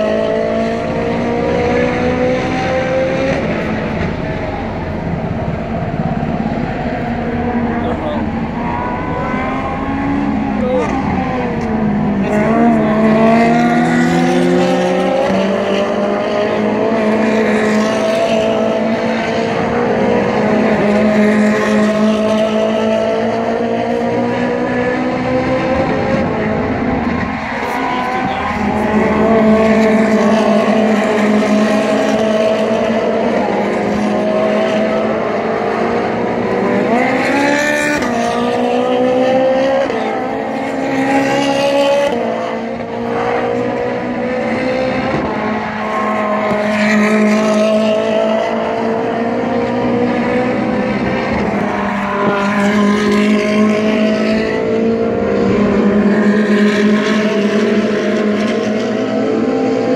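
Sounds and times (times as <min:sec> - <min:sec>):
race car engines passing: 0:00.0 - 0:59.9
steady drone: 0:01.3 - 0:14.4.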